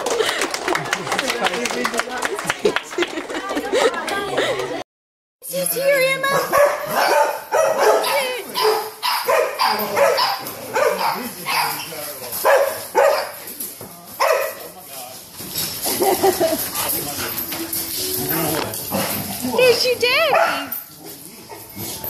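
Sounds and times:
dog barking and whining: 6.2 - 13.4, 18.9 - 21.8.

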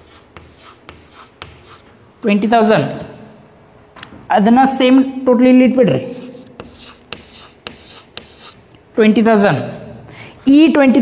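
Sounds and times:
chalk tapping on chalkboard: 0.0 - 1.9, 6.2 - 8.7
chalk scratching on chalkboard: 0.0 - 2.0, 5.9 - 8.7.

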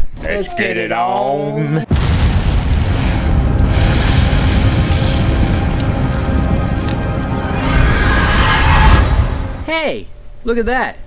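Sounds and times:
deep explosion booms and rumble: 1.9 - 9.8
intro music: 1.9 - 10.4.

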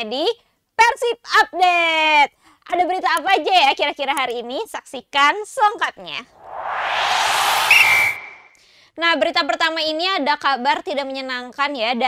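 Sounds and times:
whoosh of noise: 6.3 - 8.6
high whistle blast: 6.4 - 8.6.

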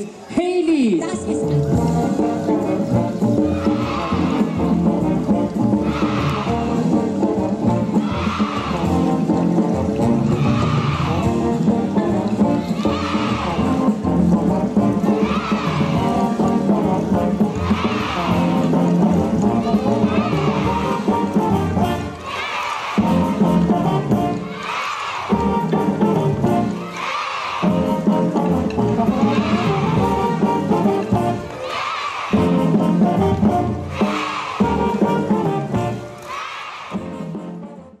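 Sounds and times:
dixieland jazz band playing: 1.1 - 22.2, 23.0 - 24.5, 25.3 - 26.8, 27.6 - 31.6, 32.3 - 36.2, 36.9 - 38.0.

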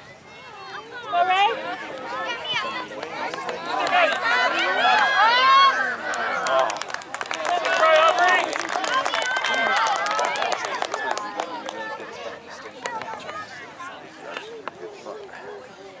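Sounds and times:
voices shouting and calling: 0.0 - 16.0.

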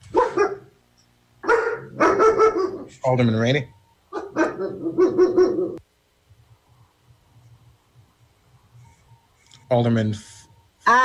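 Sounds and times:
dog barking: 0.1 - 0.7, 1.4 - 2.9, 4.1 - 5.8.

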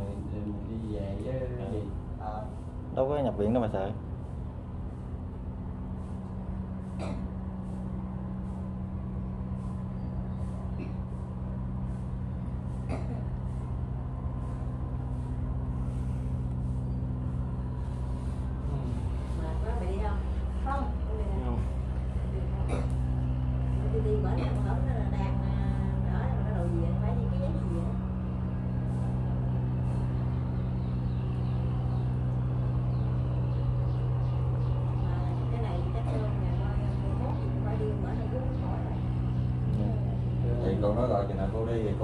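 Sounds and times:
electric fan motor hum: 0.0 - 42.0.

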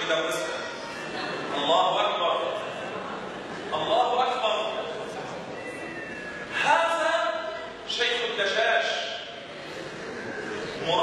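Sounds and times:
man lecturing: 1.6 - 2.6, 3.7 - 5.0, 6.5 - 9.3, 10.8 - 11.0.

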